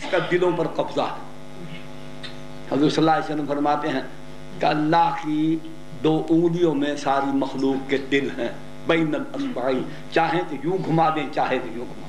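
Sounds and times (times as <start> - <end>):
man speaking: 0.0 - 1.3, 2.7 - 12.0
electrical mains hum: 0.0 - 12.0.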